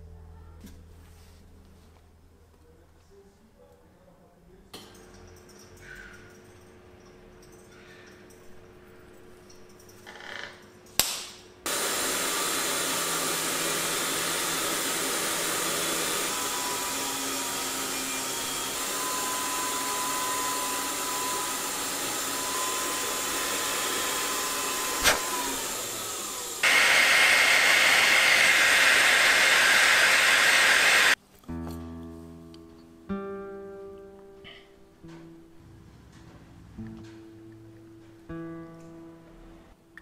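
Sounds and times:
rotary handpiece hissing: 11.7s - 31.2s
guitar music: 31.4s - 40.0s.

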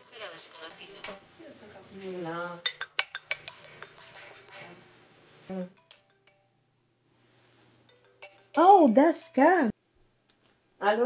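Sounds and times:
dishes clinking on glass table: 2.6s - 3.6s, 7.9s - 8.7s.

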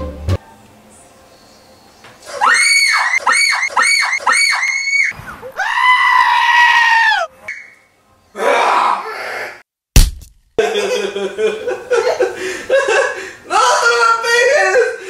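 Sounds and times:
goat screaming: 2.2s - 7.3s.

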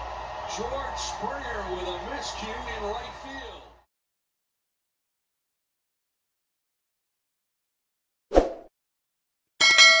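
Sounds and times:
notification bell chime: 9.6s - 10.0s.

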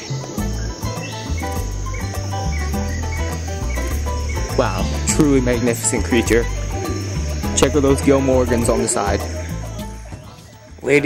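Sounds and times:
high-pitched chirring: 0.0s - 10.6s
background music with bass line: 0.0s - 11.0s.

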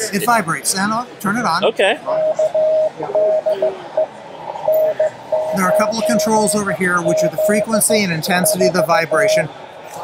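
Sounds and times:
morse code tone: 2.1s - 9.4s.

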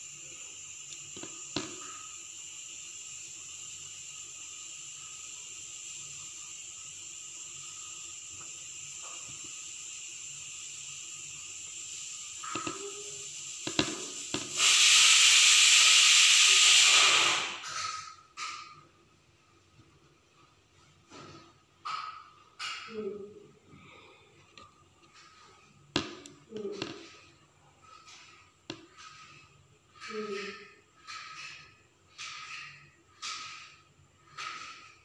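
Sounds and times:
loud hissing rush: 0.0s - 17.7s
faint steady hiss: 0.0s - 21.9s.

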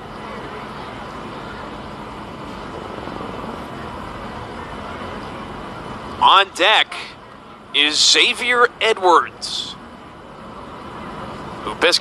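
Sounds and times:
ballpark ambience: 0.0s - 12.0s.

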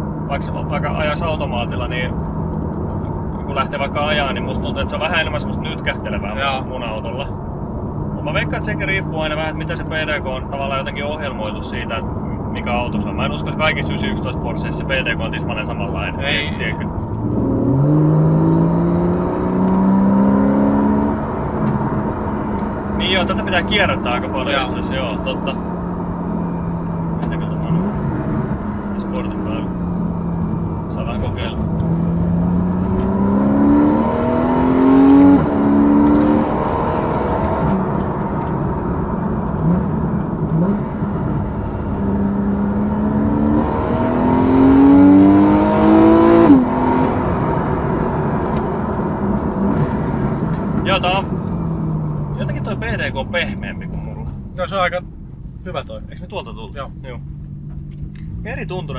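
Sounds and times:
car engine revving in cabin: 0.0s - 58.9s.

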